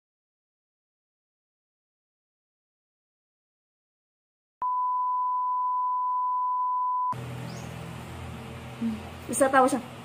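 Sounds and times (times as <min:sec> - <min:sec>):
steady test tone beep: 0:04.6 - 0:07.2.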